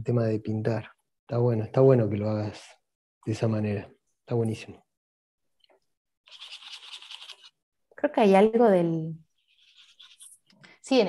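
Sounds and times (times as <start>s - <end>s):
paintbrush scrubbing paint: 6.2s - 7.6s, 9.2s - 10.6s.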